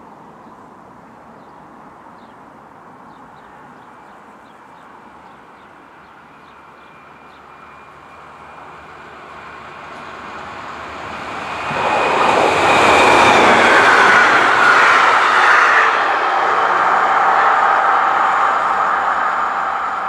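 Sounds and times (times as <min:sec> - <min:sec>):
faint train whine: 0:00.0 - 0:20.0
train passing roar: 0:03.2 - 0:20.0.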